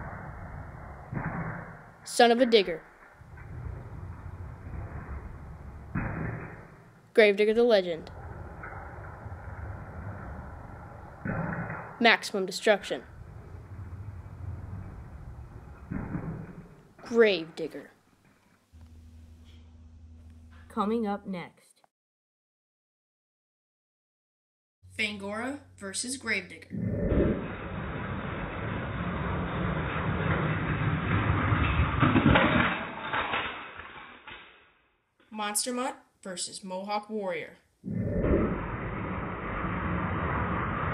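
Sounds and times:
low room rumble: 0:00.0 - 0:17.0, 0:18.7 - 0:21.0
toy truck crashing into toy cars: 0:29.2 - 0:34.6.

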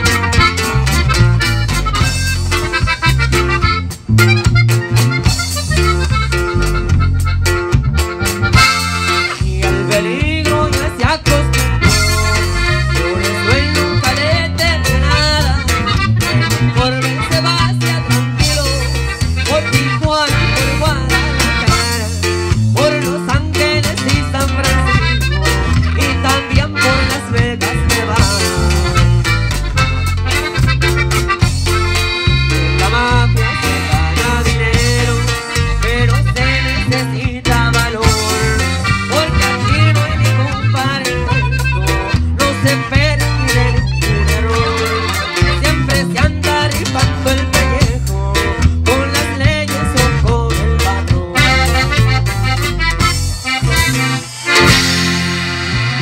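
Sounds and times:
accordion: 0:00.0 - 0:56.0
drum kit: 0:00.0 - 0:56.0
electric bass line: 0:00.0 - 0:56.0
guitar: 0:00.0 - 0:56.0
saxophone: 0:11.7 - 0:22.2, 0:38.0 - 0:46.3, 0:51.2 - 0:56.0.

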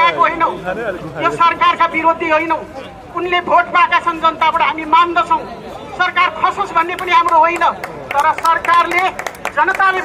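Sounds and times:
person speaking through loudspeaker: 0:00.0 - 0:10.0.

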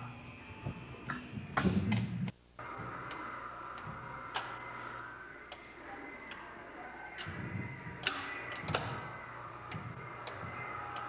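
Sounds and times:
faint steady whine: 0:00.0 - 0:11.0.

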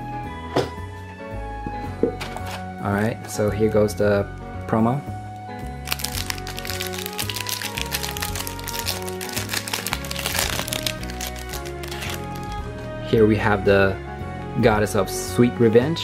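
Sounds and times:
background music with bass line: 0:00.0 - 0:16.0
plastic sleeve crinkling: 0:05.8 - 0:12.7.

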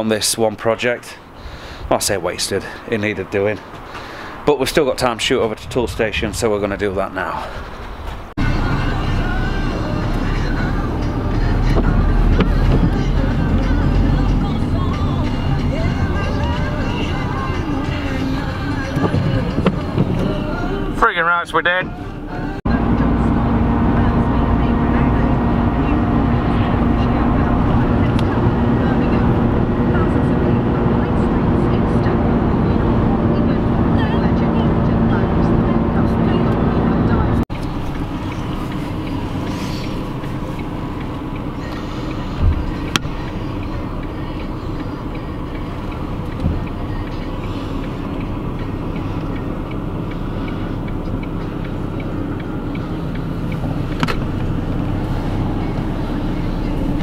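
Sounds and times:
car engine and road noise: 0:00.0 - 0:57.0
low rumble: 0:05.1 - 0:57.0.

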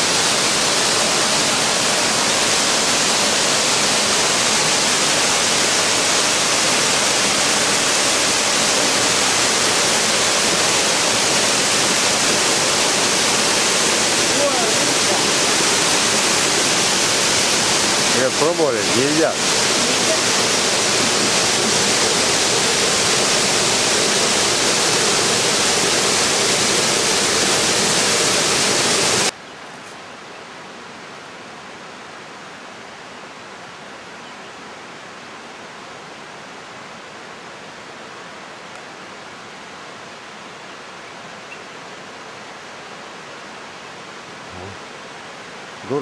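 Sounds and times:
waterfall rushing into pool: 0:00.0 - 0:29.4, 0:30.7 - 0:46.0.

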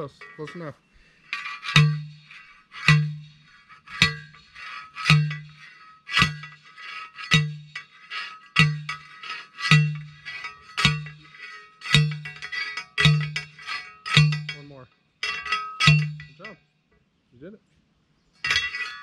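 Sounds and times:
post driver clanging on metal post: 0:00.0 - 0:16.6, 0:18.4 - 0:19.0.

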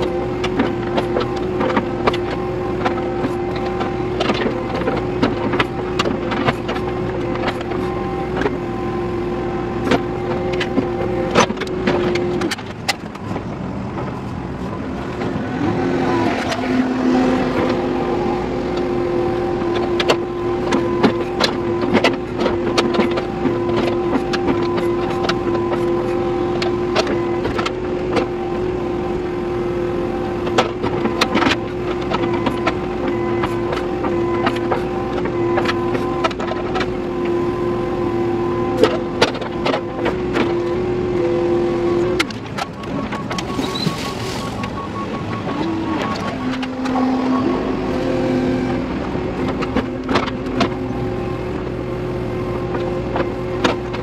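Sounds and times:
diesel engine and hydraulics running: 0:00.0 - 0:54.0
cab rattling: 0:42.0 - 0:54.0
bucket digging clicks and knocks: 0:42.1 - 0:44.8.

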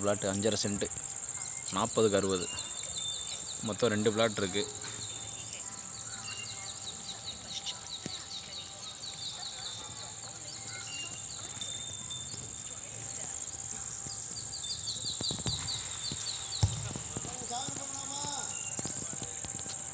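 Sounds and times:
high-pitched insect chirring: 0:00.0 - 0:19.9.

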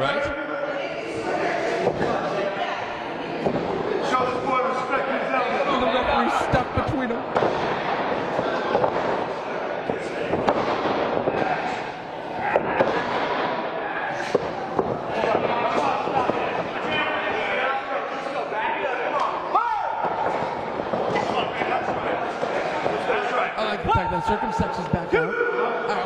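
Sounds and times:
crowd murmur: 0:00.0 - 0:26.0.

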